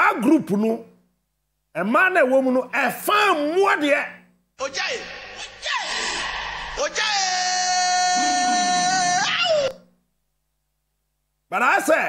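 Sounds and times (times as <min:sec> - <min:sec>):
person wailing high note: 0:05.4 - 0:09.8.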